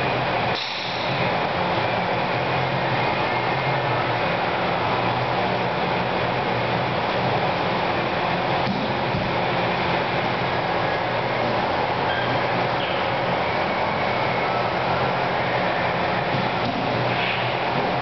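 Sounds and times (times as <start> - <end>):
ventilation rush: 0.0 - 18.0.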